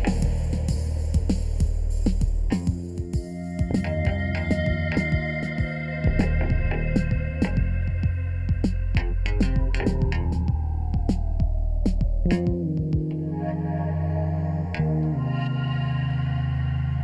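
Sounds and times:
distorted low synth chords: 0:00.0 - 0:17.0
synthesizer bass drone: 0:00.0 - 0:17.0
falling synth pitch sweep: 0:02.7 - 0:17.0.

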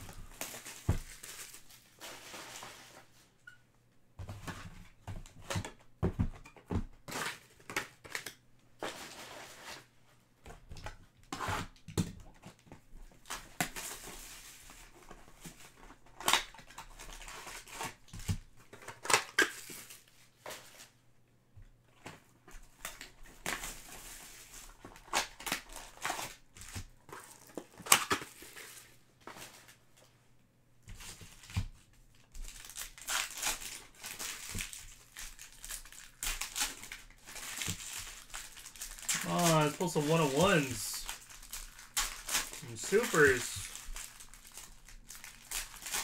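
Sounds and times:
foil wrappers crinkling and tearing: 0:00.0 - 0:02.9, 0:13.2 - 0:20.2, 0:22.8 - 0:29.8, 0:31.0 - 0:46.0.

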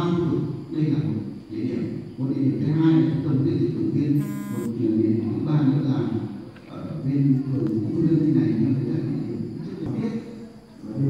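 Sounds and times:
steady low hum: 0:00.0 - 0:11.0
short buzzing tone: 0:04.2 - 0:04.7.

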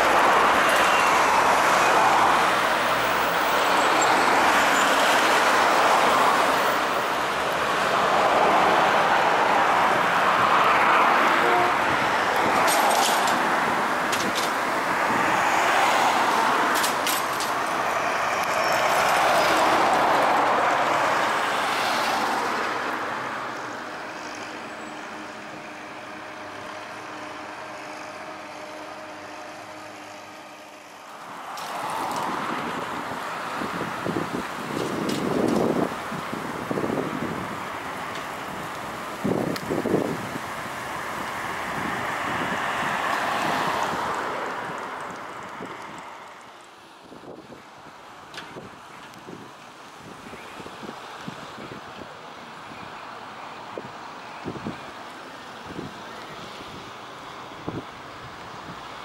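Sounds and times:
wind buffeting microphone: 0:32.0 - 0:46.1.

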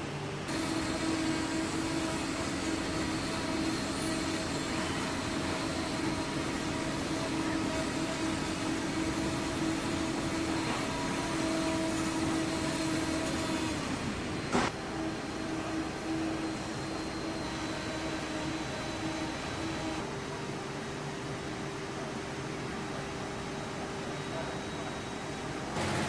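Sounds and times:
factory machinery hum: 0:00.0 - 0:26.0
machine whine: 0:00.4 - 0:20.1, 0:23.6 - 0:26.0.

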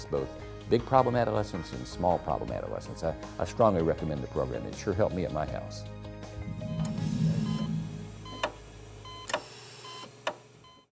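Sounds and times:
held music tones: 0:06.2 - 0:08.8.

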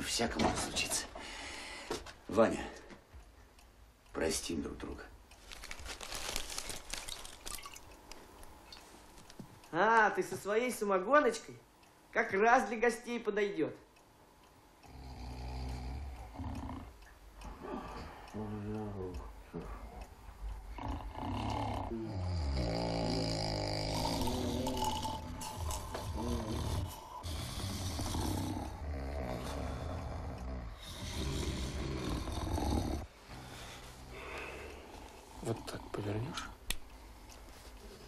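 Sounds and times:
men snoring: 0:14.8 - 0:20.0, 0:20.6 - 0:34.7.

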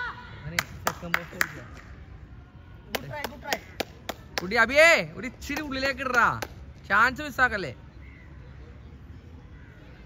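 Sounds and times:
sharp claps: 0:00.5 - 0:02.0, 0:02.9 - 0:04.8, 0:05.4 - 0:06.7.

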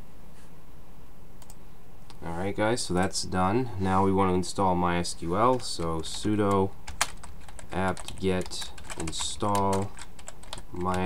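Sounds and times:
steady low hum: 0:00.0 - 0:11.0
faint clicks: 0:01.4 - 0:02.2.

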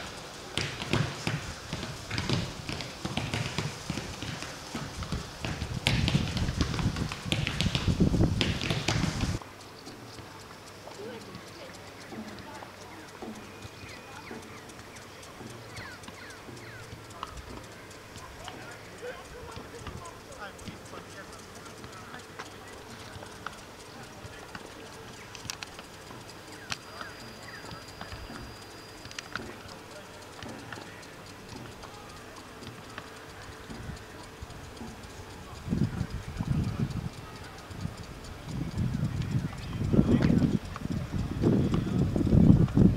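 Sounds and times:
footballs being kicked: 0:00.0 - 0:09.4
faint distant voices: 0:00.0 - 0:42.9
sprinkler ticking: 0:00.0 - 0:42.9.

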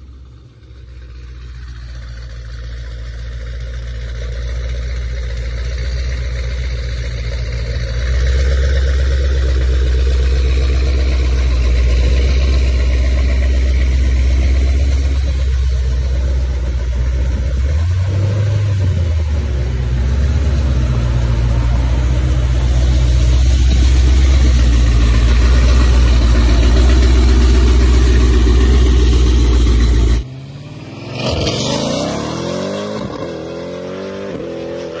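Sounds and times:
car engine idling: 0:00.0 - 0:33.5
engine rev: 0:00.0 - 0:35.0
road traffic: 0:00.0 - 0:35.0.

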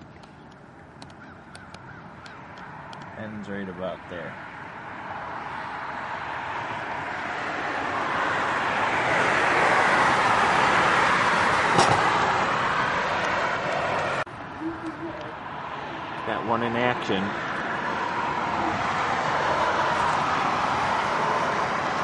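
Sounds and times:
car passing with tyre noise: 0:00.0 - 0:22.0.

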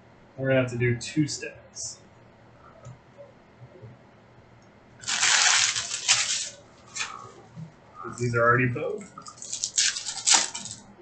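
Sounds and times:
foil card packs rustling: 0:05.0 - 0:07.3, 0:09.2 - 0:10.8.

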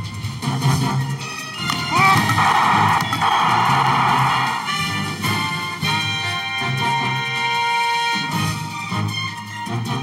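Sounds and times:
news theme music: 0:00.9 - 0:08.3
rising sweep and rush: 0:02.3 - 0:05.0.

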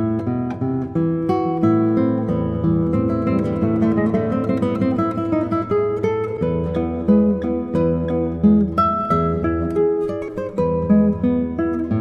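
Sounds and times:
nylon string guitar fingerstyle: 0:00.0 - 0:12.0.

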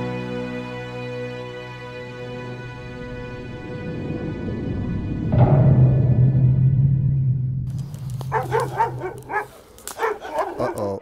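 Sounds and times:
low music drone: 0:00.0 - 0:09.4.

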